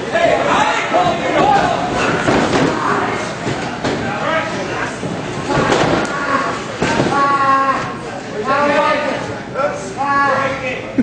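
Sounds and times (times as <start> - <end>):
crowd: 0.0 - 11.0.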